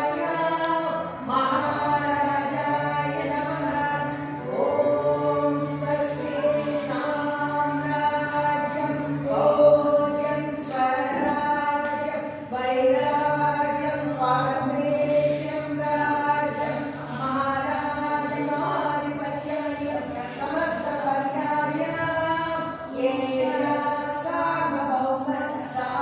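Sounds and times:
group singing devotional song: 0.0 - 26.0.

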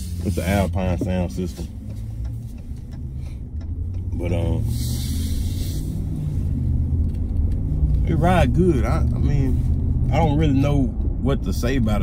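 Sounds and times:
engine and road noise in cab: 0.0 - 12.0.

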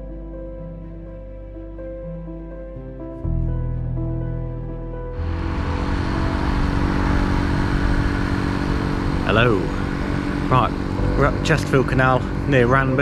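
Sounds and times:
electric air pump droning: 5.2 - 13.0.

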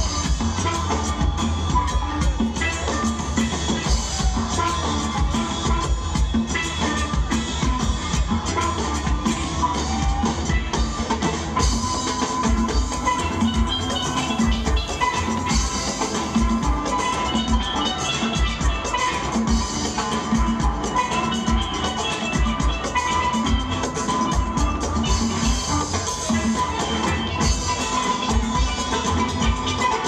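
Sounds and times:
steel pans playing melody: 0.0 - 30.0.

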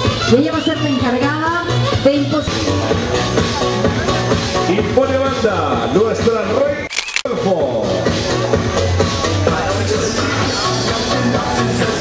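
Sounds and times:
sharp click: 6.9 - 7.3
loud background music: 7.4 - 12.0.

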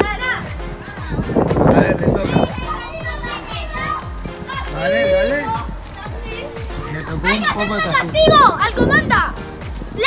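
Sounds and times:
background music: 0.0 - 10.0
children talking and laughing: 0.0 - 10.0.

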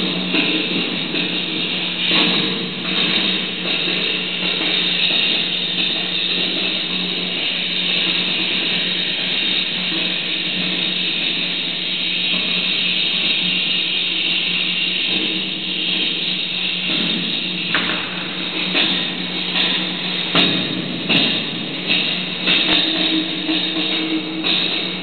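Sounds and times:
loud electronic hiss: 0.0 - 25.0.

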